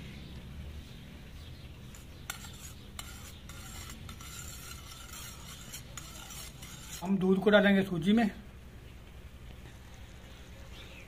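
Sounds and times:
spoon stirring milk: 1.9 - 7.2.

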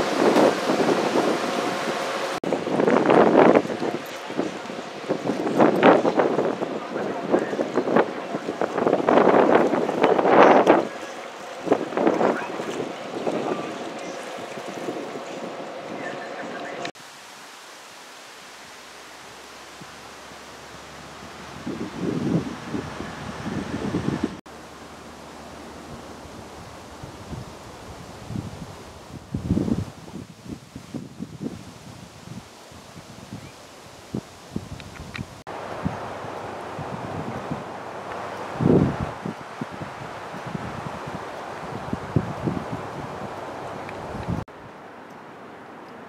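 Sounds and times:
wind buffeting microphone: 0.0 - 16.8, 21.0 - 24.4, 25.6 - 44.5.

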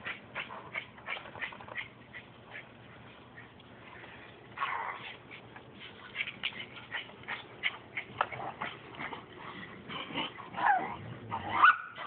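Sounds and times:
dog whining yips: 10.6 - 12.0.

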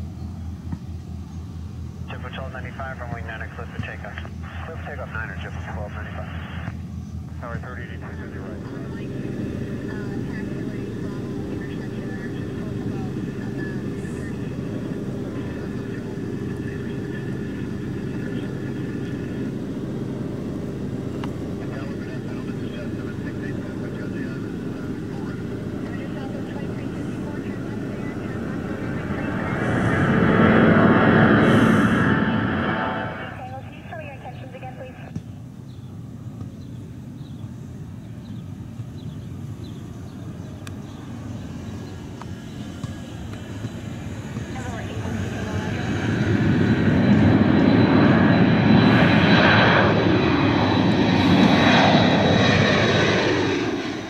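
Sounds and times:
jet engines roaring at takeoff: 0.0 - 54.0.

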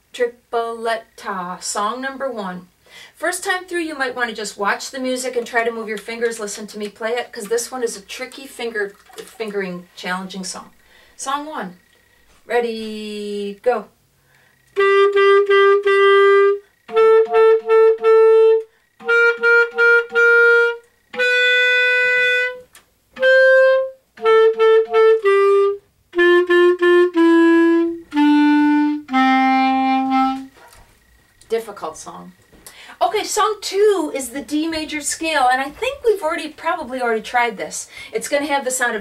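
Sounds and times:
clarinet melody: 14.7 - 30.8.

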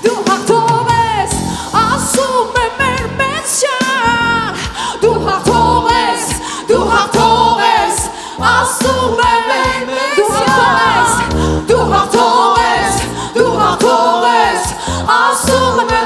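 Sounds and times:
backing singers: 0.0 - 16.0
band with steady beat and bass: 0.0 - 16.0
woman singing into microphone: 0.0 - 16.0.

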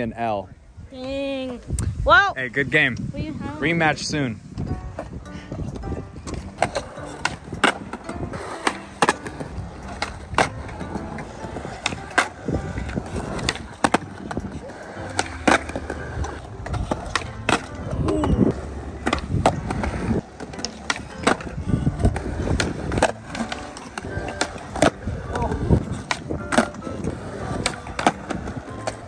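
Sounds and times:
skateboard wheels rolling on concrete: 0.0 - 29.0.

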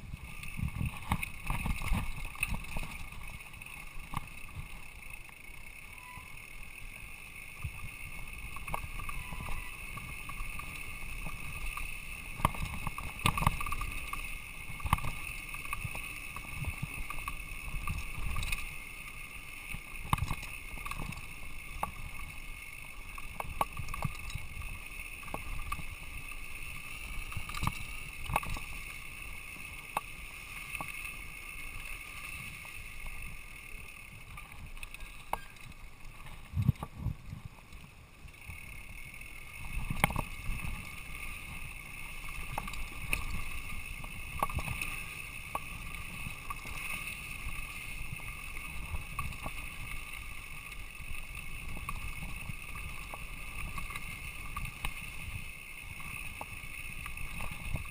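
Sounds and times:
bike rolling rush: 0.0 - 57.9.

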